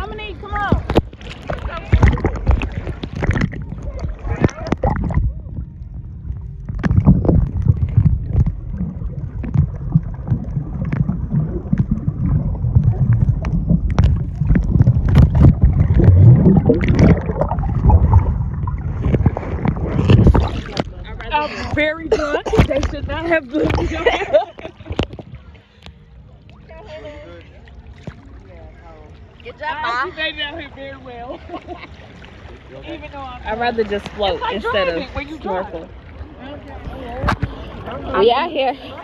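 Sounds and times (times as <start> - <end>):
underwater rumbling churn of water: 0.0 - 39.0
clicks and knocks underwater: 0.5 - 26.6, 27.9 - 28.3, 36.2 - 38.0
voices: 26.6 - 39.0.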